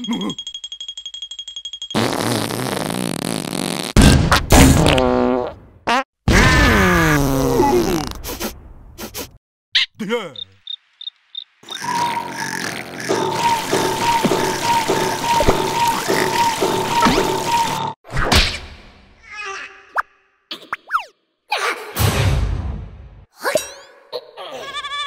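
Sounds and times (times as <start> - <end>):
gushing spraying water: 13.1 - 17.8.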